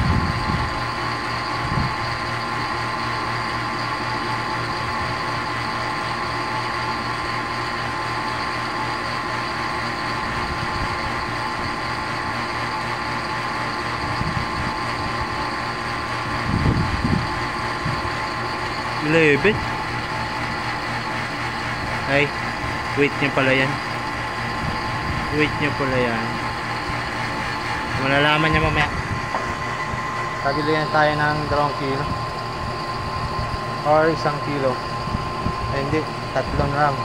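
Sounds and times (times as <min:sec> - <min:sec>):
vacuum pump humming: 0:00.0 - 0:37.0.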